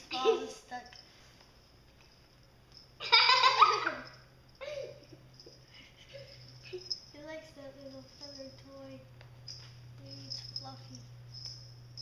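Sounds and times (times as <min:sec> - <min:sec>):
person giggling: 0:04.6 - 0:05.2.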